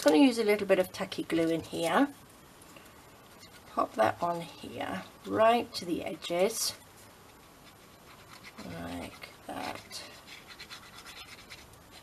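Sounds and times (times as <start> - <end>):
plastic nozzle scraping paper: 7.3 - 12.0.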